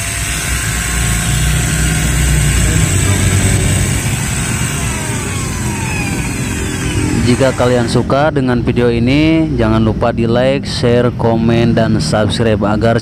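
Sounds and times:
electric drill running: 0.0 - 8.4.

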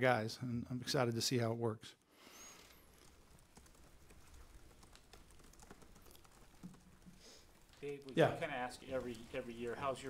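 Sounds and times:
man talking: 0.0 - 2.0, 7.8 - 10.0
laptop keyboard typing: 2.6 - 10.0.

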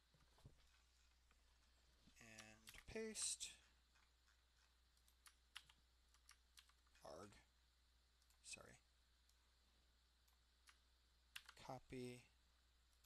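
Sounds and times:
keyboard and mouse clicks: 2.3 - 3.3, 5.0 - 7.0, 10.3 - 11.6.

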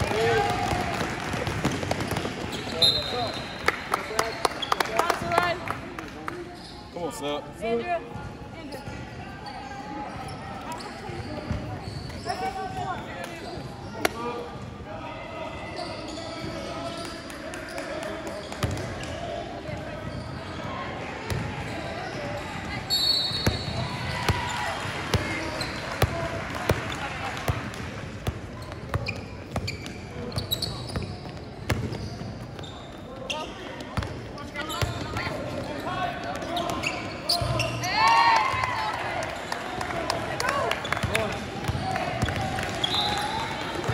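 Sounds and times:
basketball bouncing on court: 0.4 - 2.7, 18.6 - 19.0, 22.6 - 32.7, 33.9 - 35.6.

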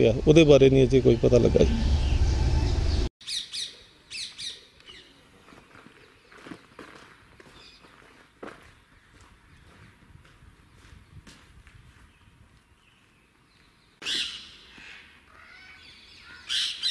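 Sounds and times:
birds chirping: 0.0 - 10.0, 10.6 - 16.9.

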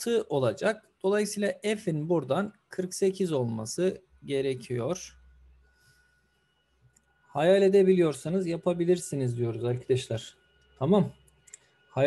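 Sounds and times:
faint steady low hum: 0.0 - 5.8, 6.7 - 12.0.

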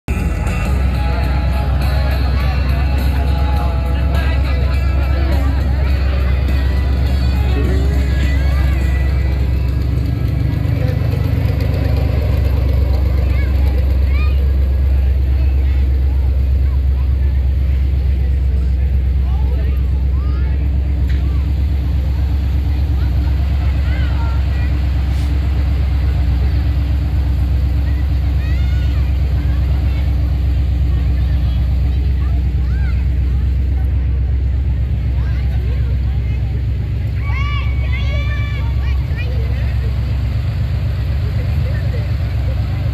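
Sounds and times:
truck engine low rumble: 0.0 - 42.9.

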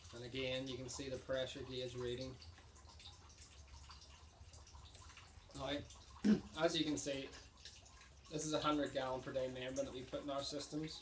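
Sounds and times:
low steady hum: 0.0 - 11.0
water trickling into plastic bucket: 0.0 - 11.0.

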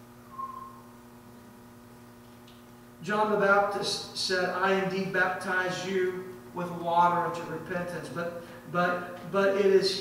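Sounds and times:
low electrical hum: 0.0 - 10.0
short high whistle tone: 0.3 - 1.0.

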